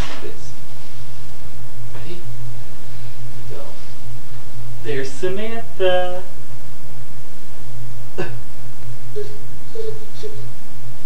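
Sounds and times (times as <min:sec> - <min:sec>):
steady low hum: 0:00.0 - 0:11.0
high-pitched voice: 0:09.2 - 0:10.5.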